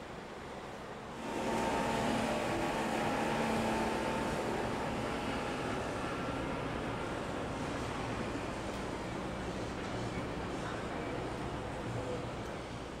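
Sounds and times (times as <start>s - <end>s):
rush of boat wake: 1.1s - 8.4s.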